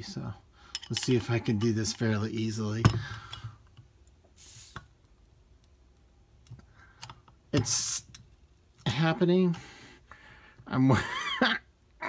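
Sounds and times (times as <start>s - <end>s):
brief hiss of bottle opening: 4.4s - 4.9s.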